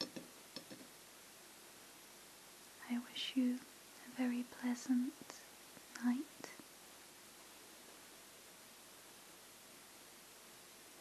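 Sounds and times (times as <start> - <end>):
woman speaking softly: 2.8 - 6.6.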